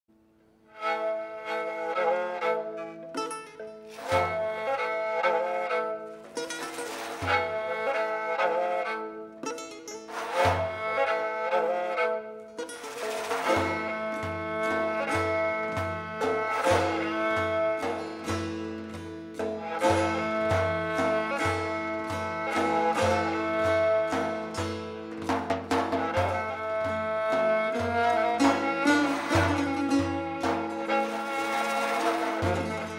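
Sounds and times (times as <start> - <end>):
bowed fiddle: 0.3 - 32.9
long-necked lute: 0.3 - 32.9
frame drum beat: 6.2 - 8.0, 12.9 - 32.9.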